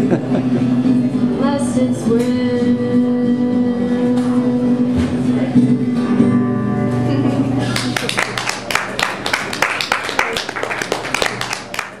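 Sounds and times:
audience clapping: 0:07.7 - 0:12.0
voices among claps: 0:07.8 - 0:12.0.

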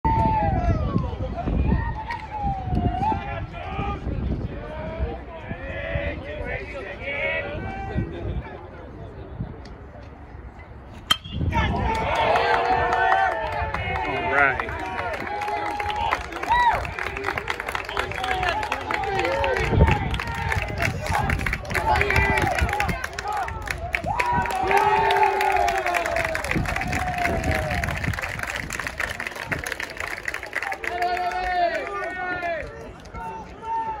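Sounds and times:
crowd cheering and shouting: 0:00.0 - 0:08.2, 0:11.3 - 0:28.7, 0:30.5 - 0:34.0
metal bat hitting ball: 0:11.0 - 0:11.6.

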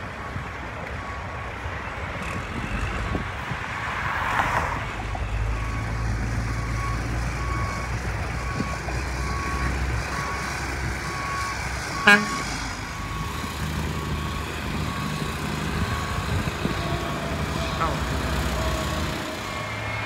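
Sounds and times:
diesel truck rumble: 0:00.0 - 0:20.0
horn toot: 0:12.0 - 0:12.4.

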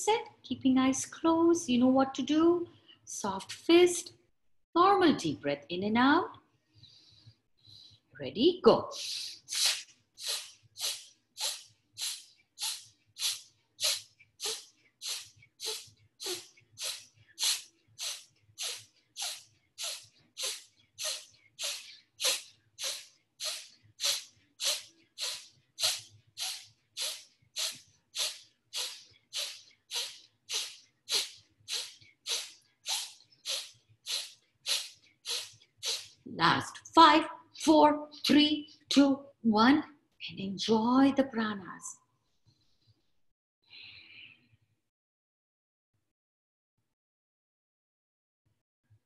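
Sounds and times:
forceful nasal breathing: 0:09.0 - 0:36.2.

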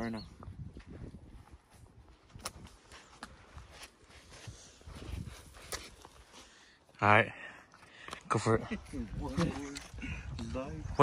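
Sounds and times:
footsteps on dirt trail: 0:00.2 - 0:06.9.

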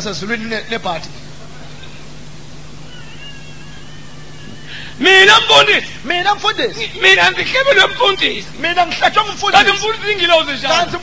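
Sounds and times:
sound system hiss and hum: 0:00.0 - 0:11.0.

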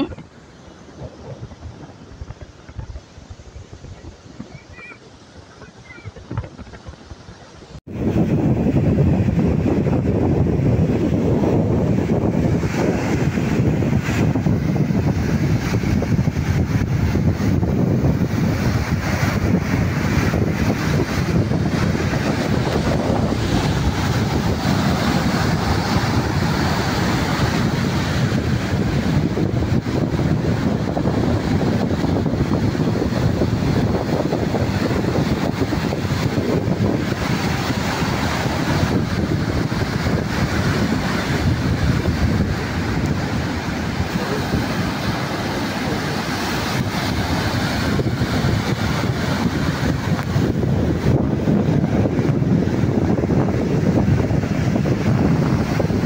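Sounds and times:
surf breaking on beach: 0:00.0 - 0:56.0
wind buffeting microphone: 0:00.0 - 0:56.0.

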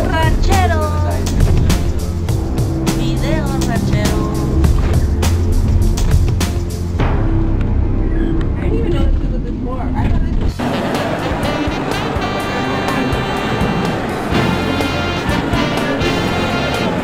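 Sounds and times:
crowd voices talking: 0:00.0 - 0:04.8, 0:08.6 - 0:17.0
music playing: 0:00.0 - 0:09.2, 0:10.5 - 0:17.0
low rumble: 0:00.0 - 0:11.2.

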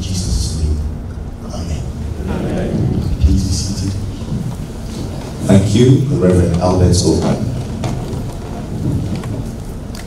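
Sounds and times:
audience shuffling into seats: 0:01.6 - 0:10.0.

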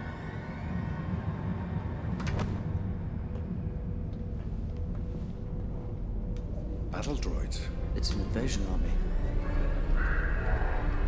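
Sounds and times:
faint orchestral music: 0:00.0 - 0:11.0.

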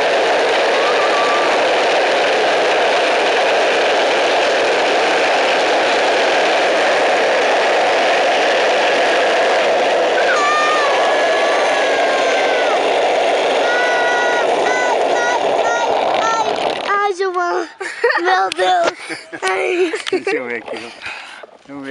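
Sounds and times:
cart wheels rattling on asphalt: 0:11.9 - 0:17.2.

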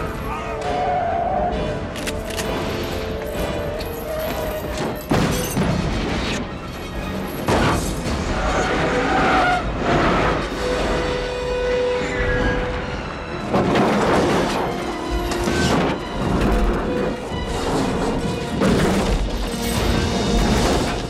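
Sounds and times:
film music: 0:00.0 - 0:21.0.

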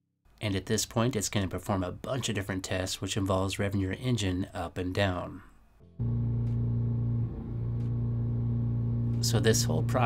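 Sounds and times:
car engine running at raised speed: 0:06.0 - 0:10.0.

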